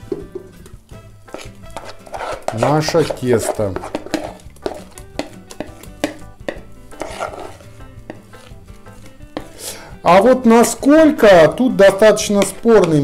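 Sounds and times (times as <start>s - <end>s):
batter scraped from bowl: 1.3s - 5.7s, 6.9s - 8.6s.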